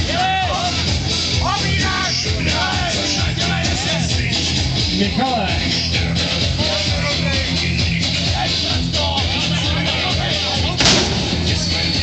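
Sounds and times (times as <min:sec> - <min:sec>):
rock music: 0:00.0 - 0:12.0
heavy weight slamming down: 0:10.8 - 0:11.6.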